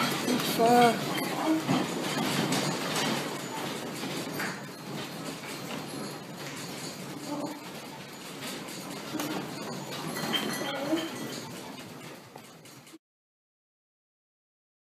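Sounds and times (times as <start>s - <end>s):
clinks: 0.0s - 13.0s
room rattling: 0.0s - 13.0s.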